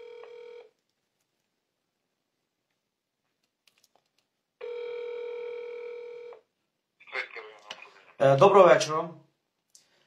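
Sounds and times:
telephone ringback beep: 0.0 - 0.7, 4.6 - 6.4.

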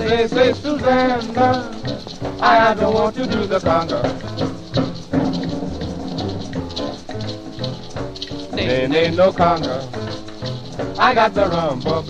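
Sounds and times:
swing band record playing: 0.0 - 12.0.

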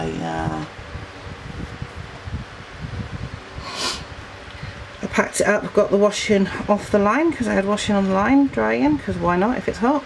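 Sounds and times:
woman talking: 0.0 - 0.7, 5.0 - 10.0
woman sniffing: 3.6 - 4.1.

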